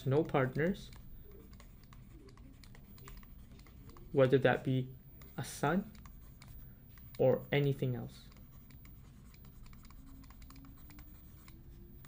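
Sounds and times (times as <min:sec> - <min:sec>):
stylus tapping on pen tablet: 0:00.0 - 0:04.1, 0:05.2 - 0:12.0
faint low hum: 0:00.0 - 0:12.0.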